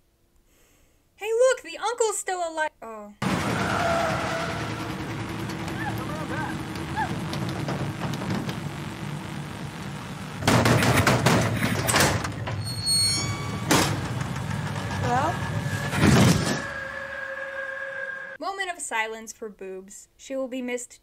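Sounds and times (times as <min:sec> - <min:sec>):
van engine running: 0:03.2 - 0:12.6, 0:13.3 - 0:16.4
sharp bang: 0:10.4 - 0:12.5, 0:13.3 - 0:17.0
struggle with sliding door: 0:10.5 - 0:16.8.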